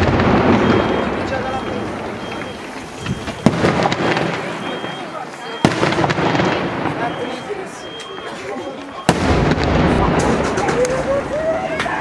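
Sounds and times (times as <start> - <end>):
firework shells bursting: 0.0 - 7.0.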